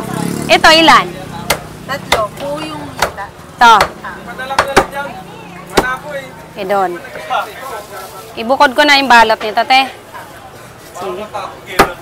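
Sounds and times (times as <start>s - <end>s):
cleaver chopping on wooden block: 1.5s - 5.0s.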